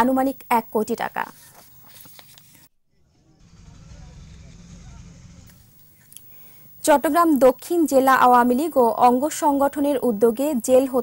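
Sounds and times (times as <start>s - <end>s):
low steady rumble: 3.0s - 5.7s.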